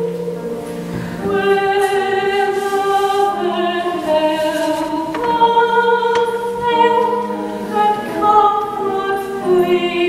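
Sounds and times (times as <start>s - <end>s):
piano accompaniment: 0.0s - 10.0s
woman singing long notes: 1.2s - 10.0s.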